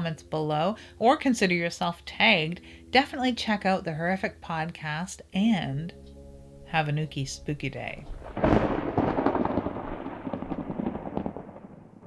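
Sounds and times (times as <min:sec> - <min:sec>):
rumbling crackling crash: 0:08.0 - 0:12.0.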